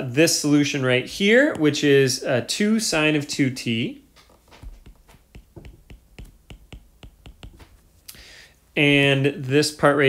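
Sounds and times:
stylus tapping on glass screen: 4.5 - 7.8.

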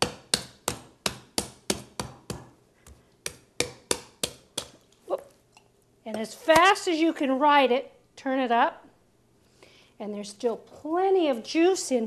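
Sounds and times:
knife chopping coconut husk: 0.0 - 2.5, 3.2 - 4.8.

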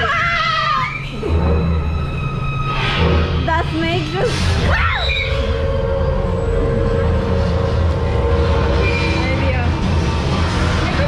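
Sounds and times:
roller coaster cars rumbling: 0.0 - 11.0.

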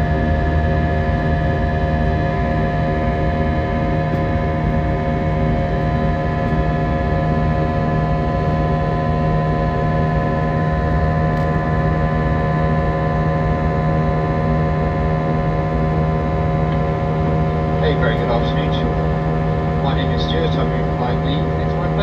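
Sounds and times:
aircraft engines droning: 0.0 - 22.0.

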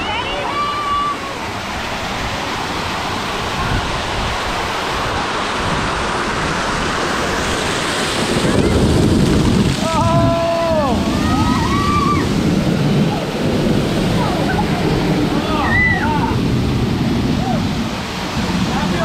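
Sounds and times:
water rushing and splashing: 0.0 - 19.0.

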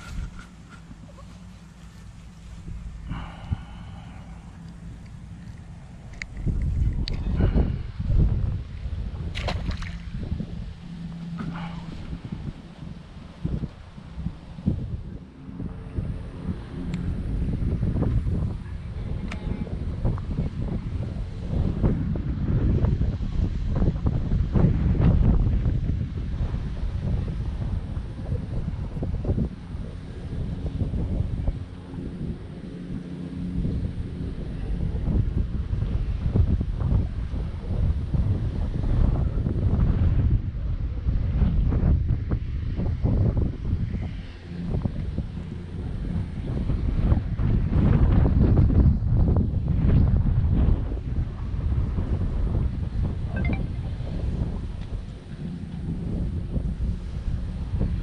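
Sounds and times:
wind buffeting microphone: 0.0 - 58.0.

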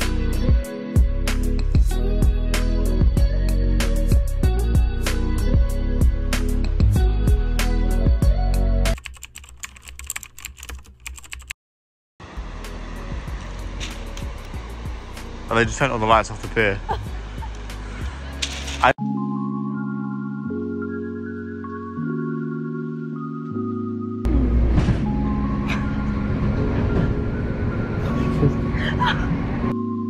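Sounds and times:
train rumbling: 24.3 - 29.8.

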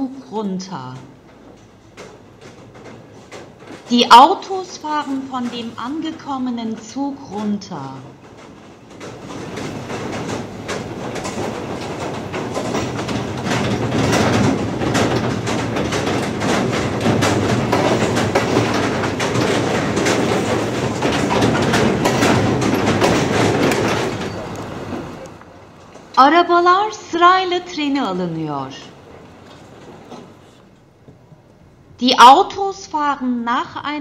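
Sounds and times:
train wagons rattling and clacking: 0.0 - 32.4.

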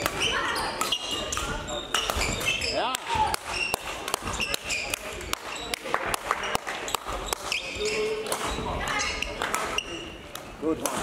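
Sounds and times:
racket striking shuttlecock: 0.0 - 5.5, 8.2 - 8.6
sneaker squeaks on court floor: 0.0 - 5.8, 6.4 - 10.3.

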